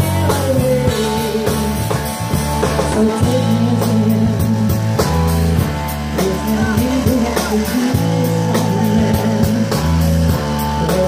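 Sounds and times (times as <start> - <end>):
amplified electric guitar: 0.0 - 11.0
drum kit beat: 0.0 - 11.0.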